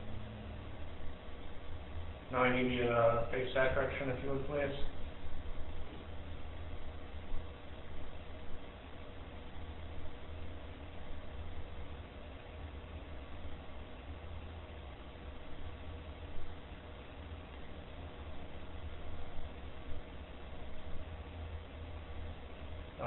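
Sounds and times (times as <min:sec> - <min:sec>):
room noise hum and hiss: 0:00.0 - 0:23.0.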